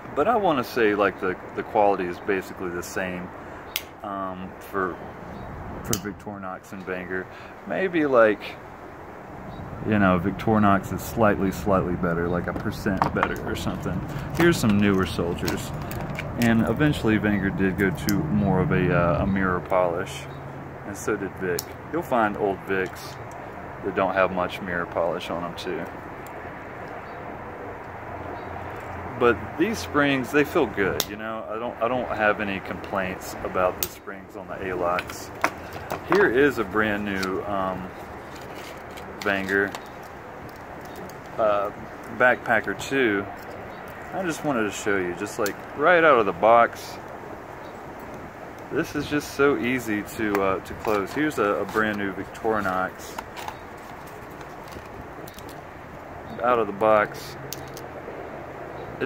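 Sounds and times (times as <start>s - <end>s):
freeway traffic: 0.0s - 59.0s.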